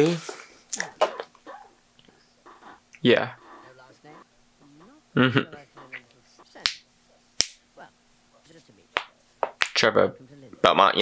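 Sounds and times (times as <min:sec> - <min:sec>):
faint voices: 0:00.8 - 0:06.6.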